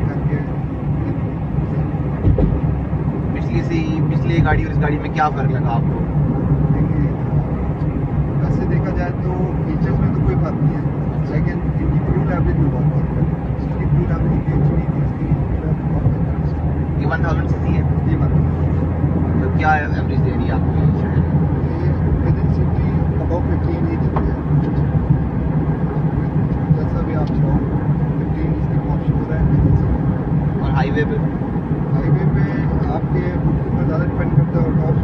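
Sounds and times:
car engine drone: 0.0 - 35.0
tyres on road: 0.0 - 35.0.

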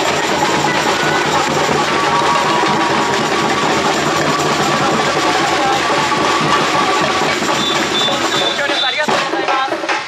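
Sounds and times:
rattling percussion: 0.0 - 10.0
samba drumming: 0.0 - 10.0.

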